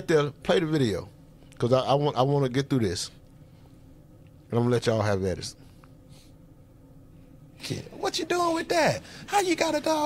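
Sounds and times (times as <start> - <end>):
low background hiss: 0.0 - 10.0
man speaking: 7.6 - 10.0.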